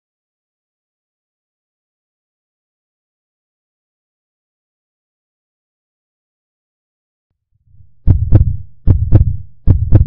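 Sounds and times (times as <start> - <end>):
low rumble: 7.6 - 10.0
heartbeat double thump: 7.9 - 10.0.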